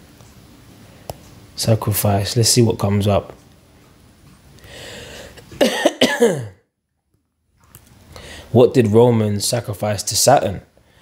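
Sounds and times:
man coughing: 5.5s - 6.6s.

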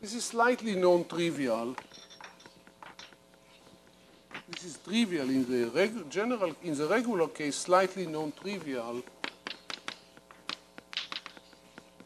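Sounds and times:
chalk tapping and scraping: 0.8s - 12.0s.

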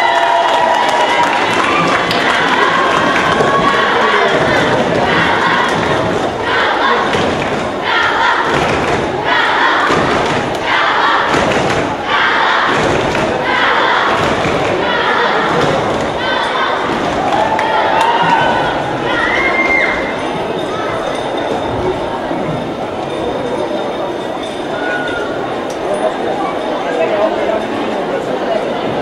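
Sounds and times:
crowd cheering in rhythmic surges: 0.0s - 26.7s
rhythmic thuds: 0.9s - 24.6s.

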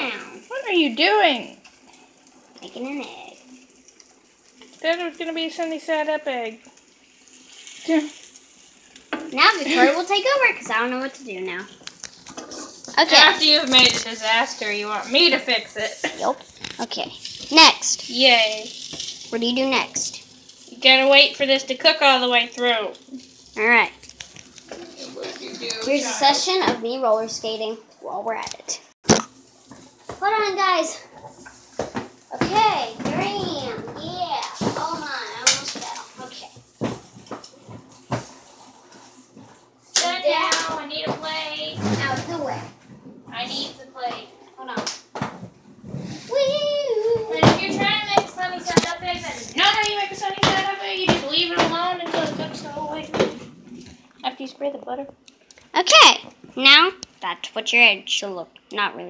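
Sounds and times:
kitchen background noise: 0.0s - 59.0s.

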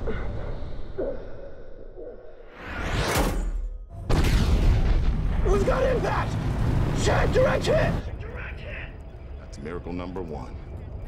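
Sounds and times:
deep explosion rumbling: 4.1s - 6.9s.

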